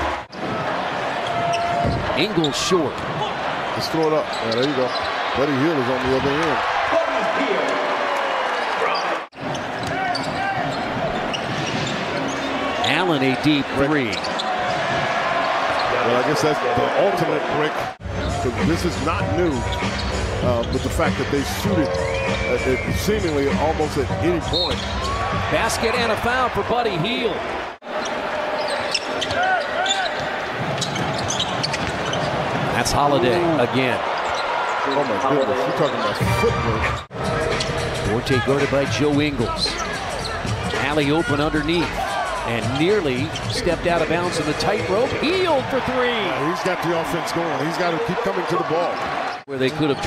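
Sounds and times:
crowd noise: 0.0 - 50.0
basketball bouncing on court: 30.1 - 32.7.

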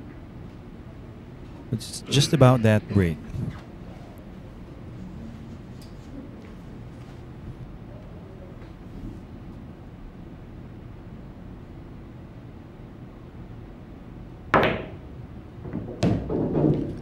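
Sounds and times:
low room hum: 0.0 - 17.0
cue ball striking pool ball: 14.6 - 15.0, 15.7 - 17.0.

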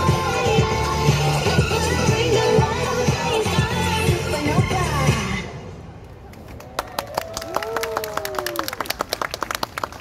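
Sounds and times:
audience clapping: 6.3 - 10.0.

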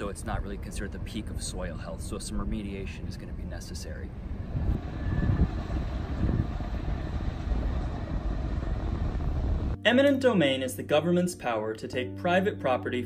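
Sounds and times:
low outdoor rumble: 0.0 - 9.8.

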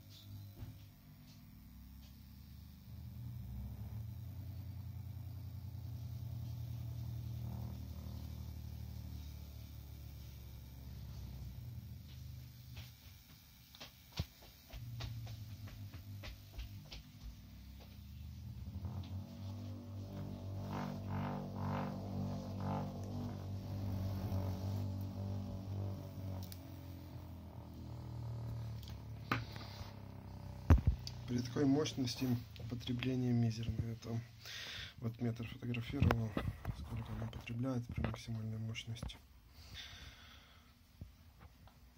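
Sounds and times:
small motor humming: 0.0 - 34.9.

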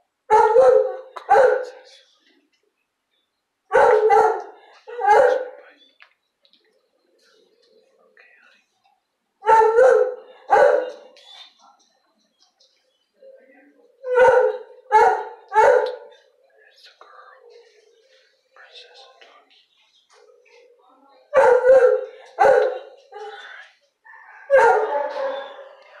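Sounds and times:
dog barking: 0.3 - 1.8, 3.7 - 5.6, 9.4 - 11.2, 14.0 - 16.3, 21.3 - 23.4, 24.1 - 26.0.

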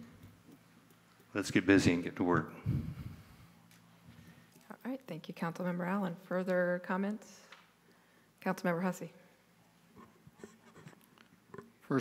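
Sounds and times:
faint soft clicks and rustles: 0.0 - 1.4.

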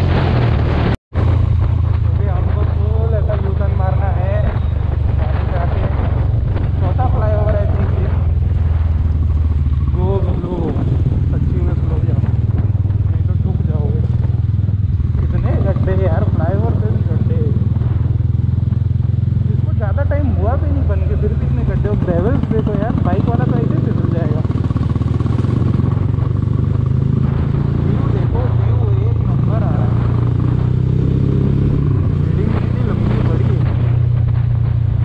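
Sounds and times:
motorcycle engine droning: 0.0 - 35.0.

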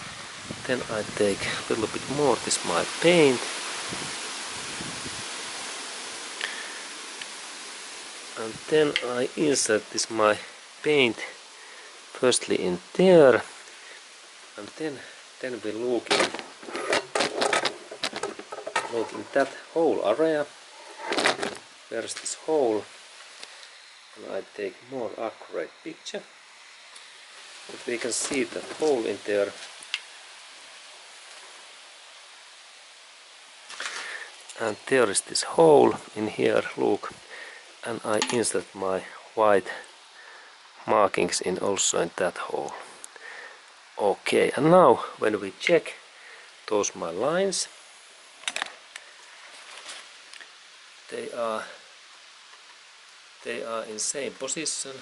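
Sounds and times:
background hiss: 0.0 - 55.0.

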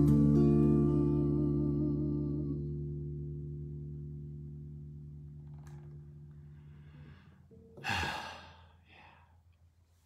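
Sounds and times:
man sighing: 6.7 - 9.4.

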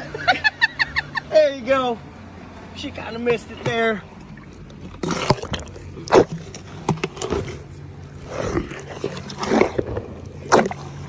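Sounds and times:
elephant chewing and crunching: 4.1 - 11.0.

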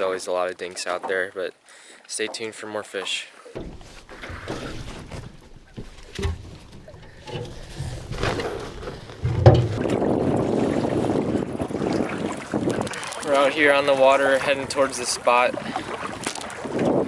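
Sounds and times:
wind: 0.0 - 17.0
water noise: 2.2 - 17.0
knocks on aluminum canoe: 3.6 - 9.9.

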